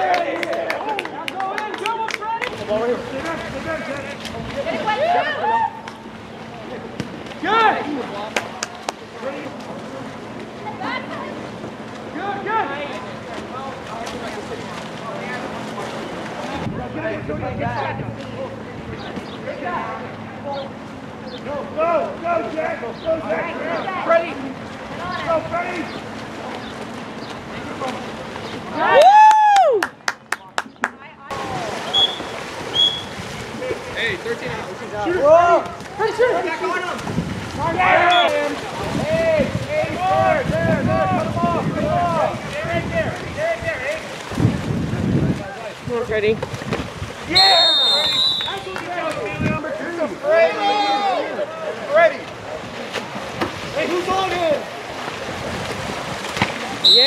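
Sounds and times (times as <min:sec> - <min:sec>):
hands clapping: 0:00.0 - 0:02.6, 0:08.3 - 0:09.0, 0:29.0 - 0:31.0
water splashing: 0:00.0 - 0:57.0
people shouting: 0:04.8 - 0:06.0, 0:28.7 - 0:29.8, 0:37.7 - 0:42.4, 0:50.2 - 0:51.7
short high whistle blasts: 0:31.9 - 0:33.1, 0:47.4 - 0:48.6
wind noise: 0:37.0 - 0:47.4.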